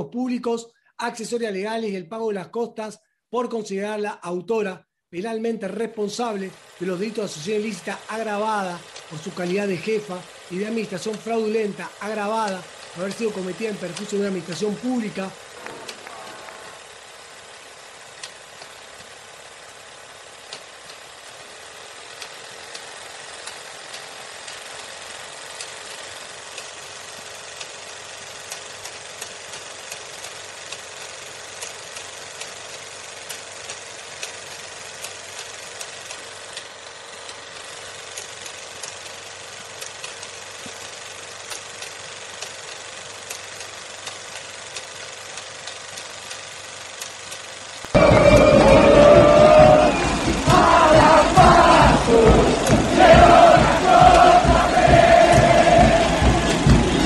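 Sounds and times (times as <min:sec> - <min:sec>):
crackling hiss with small clicks: 0:12.4 - 0:19.7, 0:21.9 - 0:47.9.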